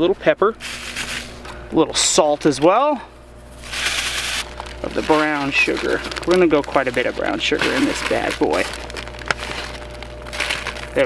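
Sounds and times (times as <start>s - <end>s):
plastic bag rustle: 0.6s - 1.6s, 3.2s - 11.0s
granules pouring into plastic bag: 3.6s - 11.0s.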